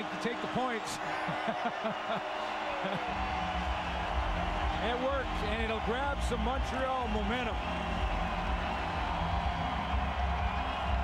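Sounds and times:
stadium crowd cheering: 0.0s - 11.0s.

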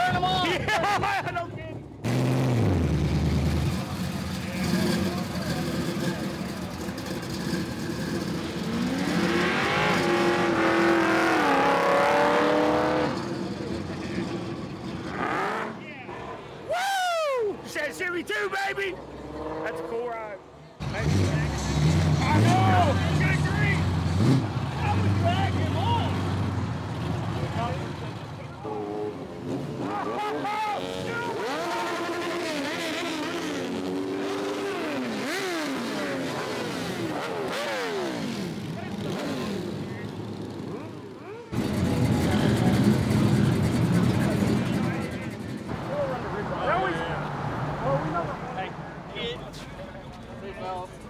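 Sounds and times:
engines revving: 0.0s - 16.4s, 17.7s - 51.0s
low engine rumble: 39.9s - 46.6s.

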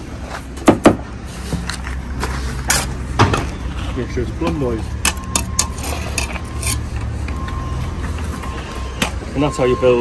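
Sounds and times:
trowel scraping mortar: 5.6s - 6.9s.

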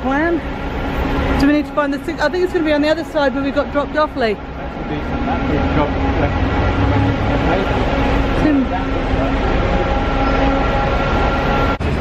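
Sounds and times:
street traffic: 0.0s - 12.0s
vehicle engine humming: 0.0s - 12.0s.

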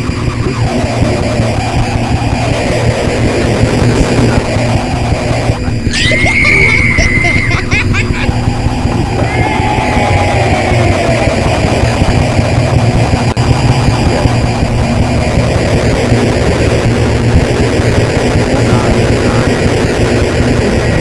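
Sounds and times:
hissing crackling noise: 0.0s - 21.0s
steady low hum: 0.0s - 21.0s
high whistle-like tone: 5.7s - 13.4s.

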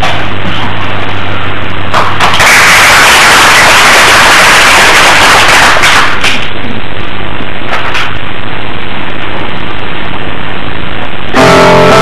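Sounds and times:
audience applauding: 2.0s - 6.5s.

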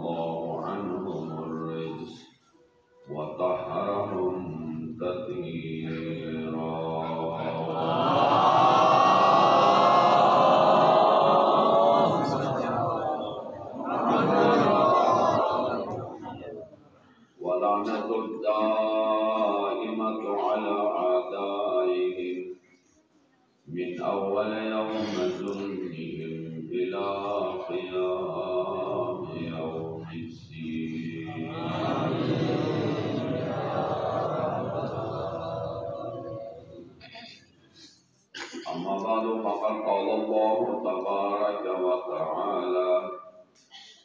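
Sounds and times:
man chanting: 0.0s - 16.2s, 17.4s - 22.6s, 23.7s - 37.0s, 38.6s - 43.4s.

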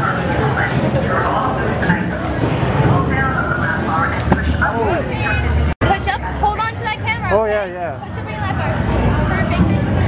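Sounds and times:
people talking indistinctly: 0.0s - 10.0s.

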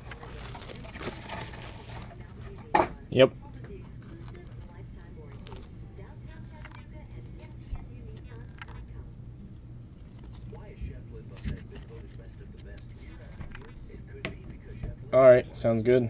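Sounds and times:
shrink-wrap rustling: 0.0s - 2.7s, 3.8s - 9.2s, 9.8s - 13.9s
faint voices: 0.0s - 15.6s
low steady hum: 0.0s - 16.0s.

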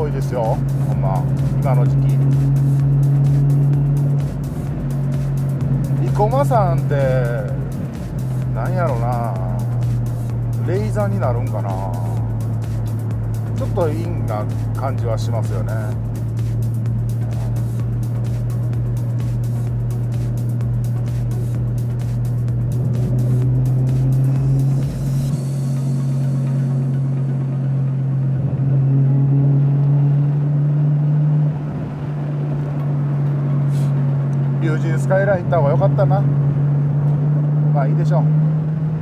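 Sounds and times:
car engine droning inside cabin: 0.0s - 39.0s.

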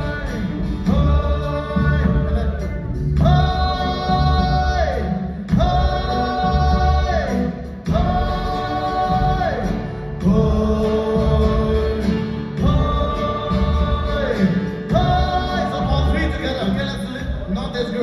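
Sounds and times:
backing track with steady beat: 0.0s - 18.0s
voices singing chant in unison: 3.4s - 16.3s.

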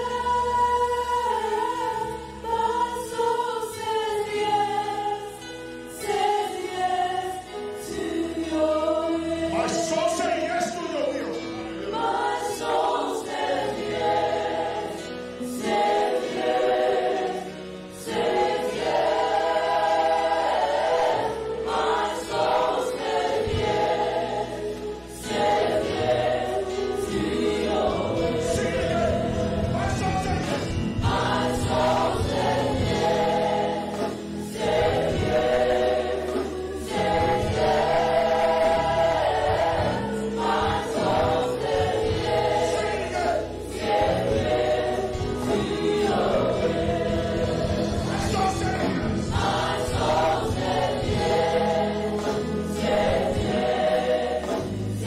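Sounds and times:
congregation singing worship song: 0.0s - 55.0s
instrumental accompaniment: 0.0s - 55.0s.

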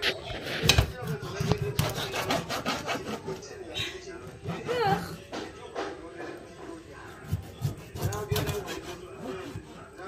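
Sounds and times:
knife sawing through fish: 0.4s - 3.5s, 7.1s - 10.0s.

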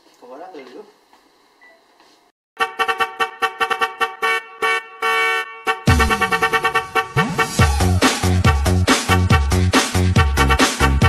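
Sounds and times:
stuttering horn-like blasts: 2.6s - 11.0s
dance music with heavy bass: 5.9s - 11.0s.

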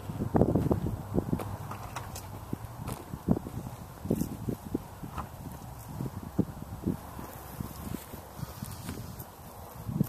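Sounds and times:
footsteps on dry grass: 2.4s - 4.7s, 7.1s - 10.0s.

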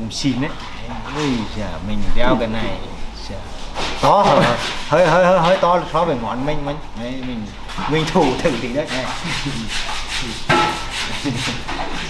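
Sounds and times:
rubbing or scraping strokes: 1.0s - 6.0s, 7.7s - 12.0s.

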